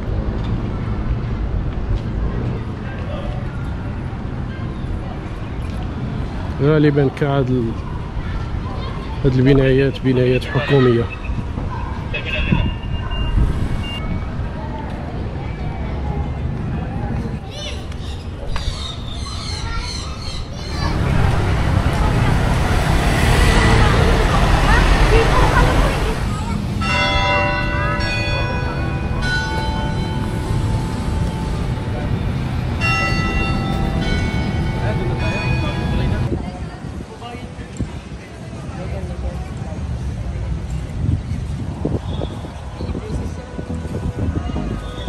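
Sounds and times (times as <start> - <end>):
traffic rumble: 0.0 - 45.0
church bells ringing: 26.8 - 36.3.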